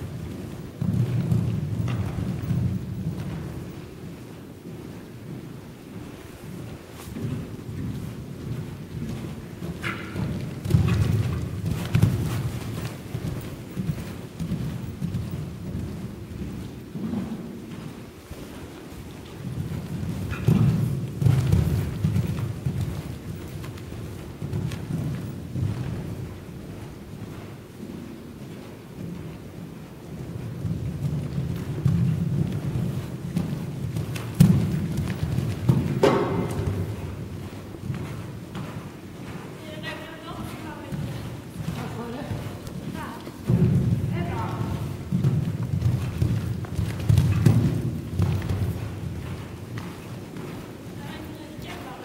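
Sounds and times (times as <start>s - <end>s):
horse hoofbeats on sand: 0.0s - 52.0s.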